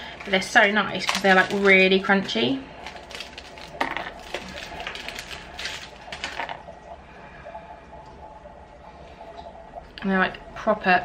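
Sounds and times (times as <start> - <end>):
plastic wrapper crinkling: 0.2 - 6.6.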